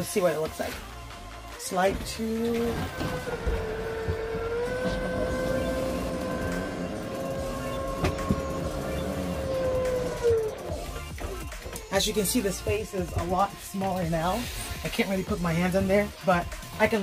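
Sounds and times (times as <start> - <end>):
electric motor whining: 1.9 - 11.9.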